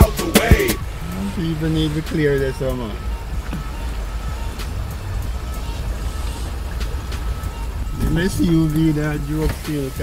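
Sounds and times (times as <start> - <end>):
engine and road rumble: 0.0 - 10.0
water swishing under tyres: 0.0 - 10.0.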